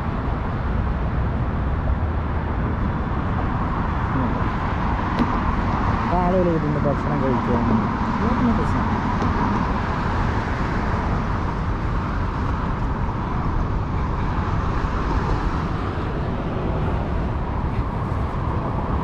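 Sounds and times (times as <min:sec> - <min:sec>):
highway traffic noise: 0:00.0 - 0:19.0
voice: 0:04.2 - 0:04.4, 0:06.1 - 0:09.6.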